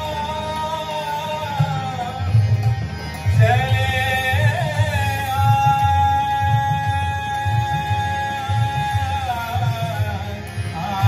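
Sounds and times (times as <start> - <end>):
harmonium: 0.0 - 11.0
tabla beat: 0.0 - 11.0.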